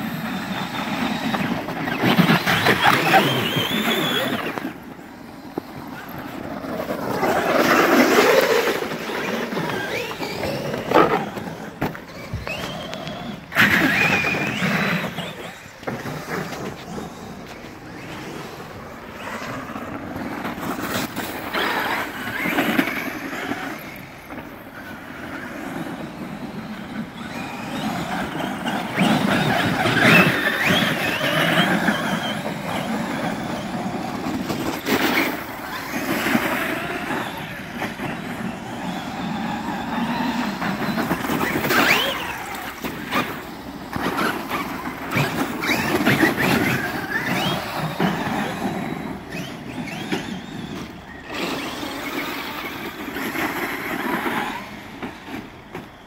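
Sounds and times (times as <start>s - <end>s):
electric motors whining: 0.0s - 56.0s.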